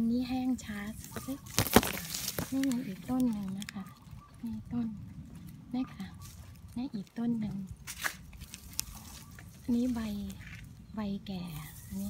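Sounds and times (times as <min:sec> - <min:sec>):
woman speaking: 0:00.0 - 0:01.5, 0:02.4 - 0:05.1, 0:05.7 - 0:07.8, 0:09.6 - 0:12.0
low steady rumble: 0:02.1 - 0:12.0.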